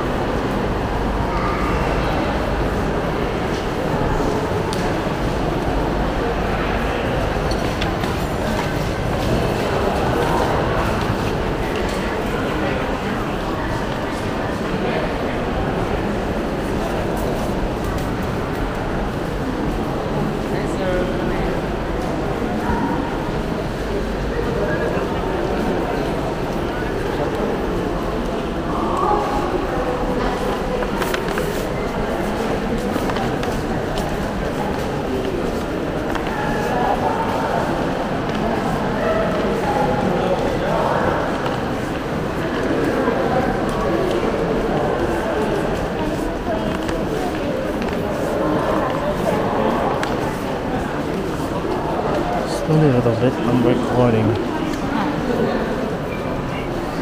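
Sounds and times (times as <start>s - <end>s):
background chatter of shoppers: 0.0s - 57.0s
crowd murmur echoing in a hall: 0.0s - 57.0s.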